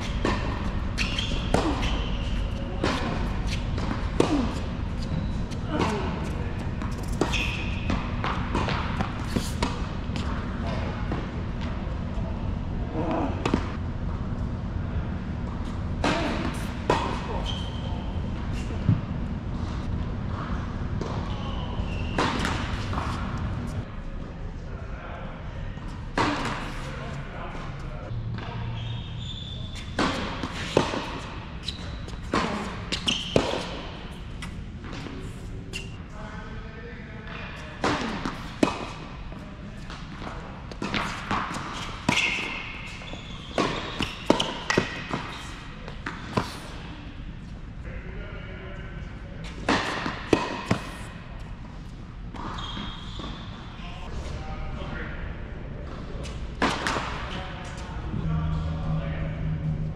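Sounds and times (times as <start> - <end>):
tennis balls bouncing on hard court: 0.0 - 12.2, 13.1 - 13.8, 21.0 - 23.8, 29.7 - 35.9, 37.8 - 46.9, 49.4 - 51.0, 56.6 - 57.8
tennis balls hit by rackets: 0.0 - 12.2, 13.0 - 13.8, 20.9 - 23.8, 26.1 - 27.0, 29.7 - 36.0, 37.8 - 46.9, 49.4 - 52.6, 55.9 - 57.8.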